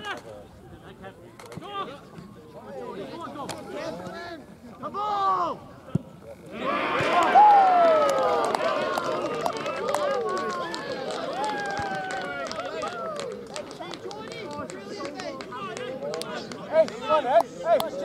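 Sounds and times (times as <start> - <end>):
men cheering and shouting: 6.5 - 13.3.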